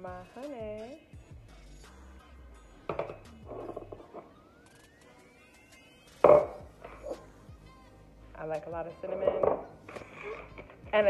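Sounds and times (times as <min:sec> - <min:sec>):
faint background music: 0:00.0 - 0:11.0
utensils knocking against bowl: 0:06.2 - 0:06.6.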